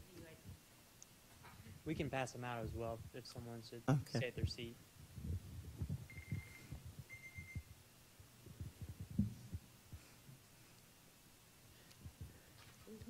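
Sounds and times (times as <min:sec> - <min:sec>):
muffled low thumps and knocks: 0:04.4 - 0:06.1, 0:08.5 - 0:09.6
faint high tones: 0:06.1 - 0:07.7.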